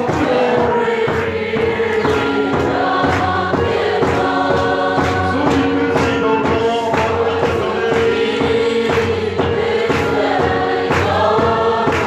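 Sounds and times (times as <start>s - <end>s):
choir singing gospel music: 0.0s - 12.0s.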